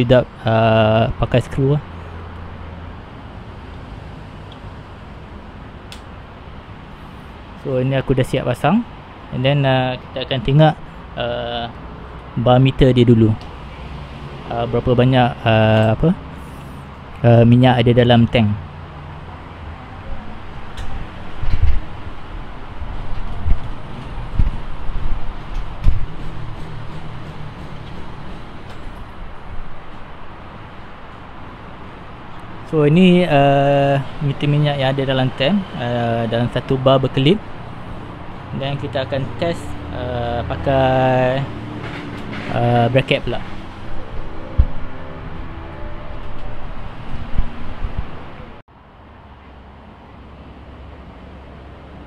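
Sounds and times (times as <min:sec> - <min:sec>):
steady background hum: 0:00.0 - 0:52.0.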